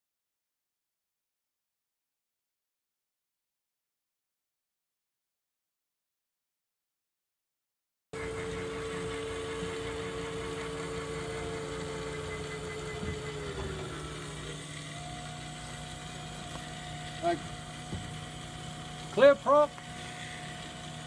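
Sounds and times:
electrical hum and whine: 8.2s - 21.0s.

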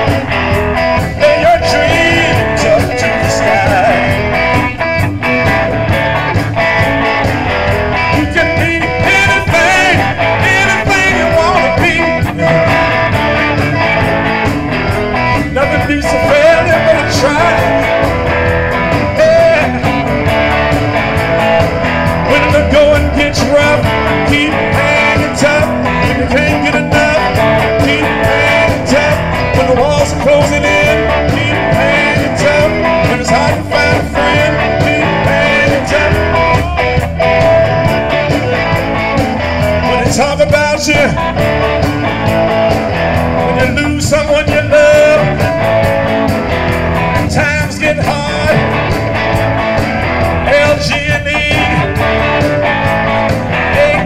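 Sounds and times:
electric guitar: 0.0s - 54.0s
live blues band playing: 0.0s - 54.0s.

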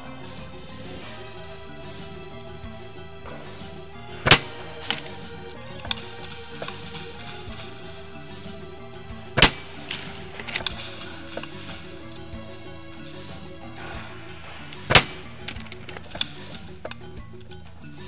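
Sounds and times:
background music: 0.0s - 18.0s
airsoft rifle shots cracking: 3.2s - 16.7s.

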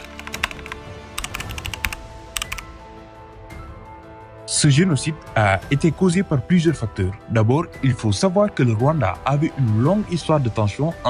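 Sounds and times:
keyboard key clicks: 0.0s - 2.7s
soft background music: 0.0s - 11.0s.

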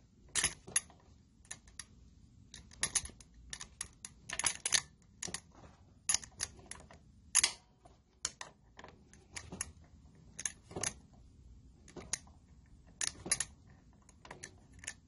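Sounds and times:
pliers clicking on metal: 0.3s - 1.9s, 2.5s - 5.4s, 6.1s - 7.6s, 10.4s - 11.0s, 13.0s - 15.0s.

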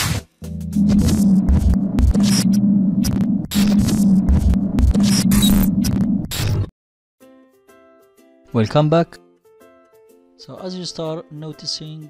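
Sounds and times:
low thuds: 0.6s - 6.6s
glitchy electrical hum: 0.6s - 6.7s
static crackle: 0.7s - 6.7s.

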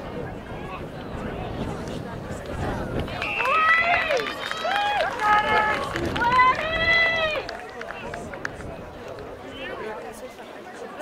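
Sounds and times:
outdoor noise: 0.0s - 11.0s.

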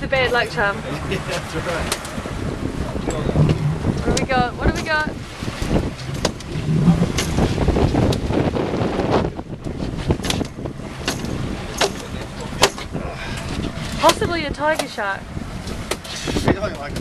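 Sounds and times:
outboard motor rumble: 0.0s - 17.0s
wind buffeting microphone: 0.0s - 17.0s.

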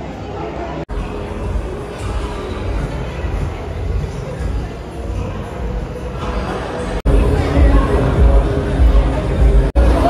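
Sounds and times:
mall background noise: 0.0s - 10.0s.

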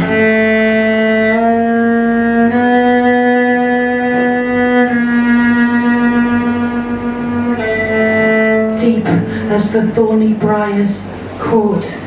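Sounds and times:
cello bowed long notes: 0.0s - 11.4s.

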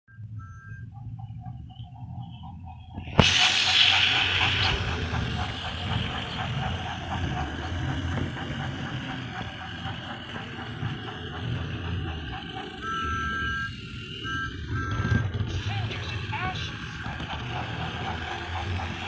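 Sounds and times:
wheels clattering over track: 0.8s - 19.0s
toy train motor whirring: 2.0s - 14.6s, 15.2s - 19.0s.

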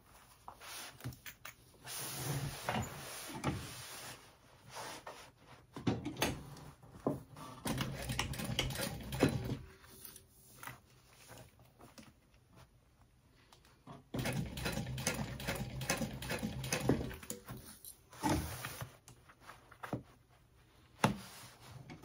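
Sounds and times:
sewing machine stitching: 7.6s - 9.7s, 14.2s - 17.4s.

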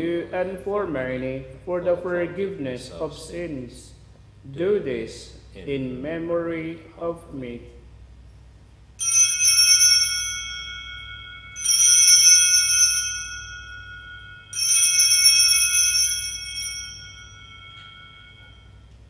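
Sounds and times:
altar bells ringing: 9.0s - 19.0s.

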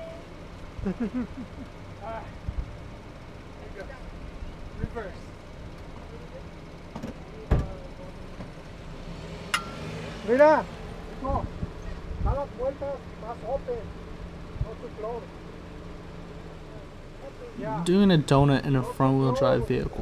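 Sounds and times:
car engine idling: 0.0s - 20.0s
person laughing: 0.8s - 1.7s
indistinct voices: 16.7s - 20.0s.

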